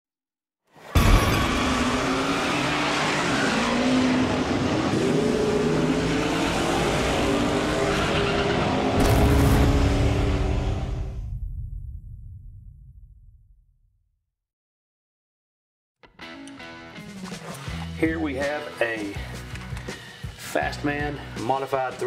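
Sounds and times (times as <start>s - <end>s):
race car engines revving: 1.3s - 11.0s.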